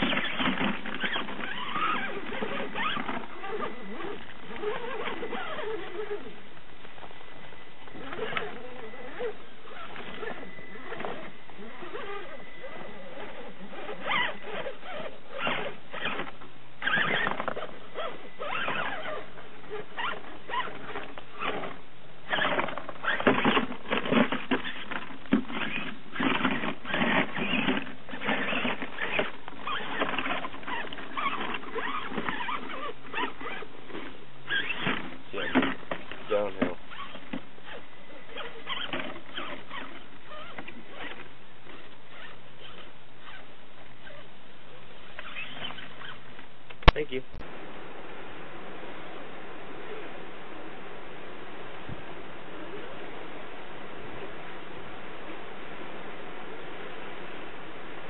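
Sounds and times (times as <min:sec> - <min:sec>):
electric motor and gears whining: 0:00.0 - 0:43.4.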